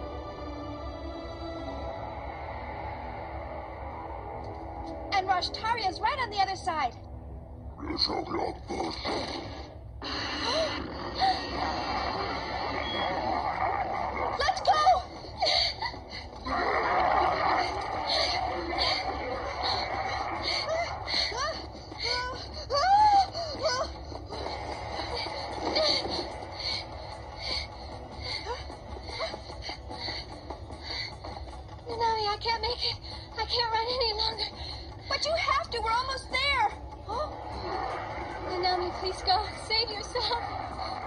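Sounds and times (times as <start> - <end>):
dramatic music with a beat: 0.0 - 7.8, 9.2 - 41.0.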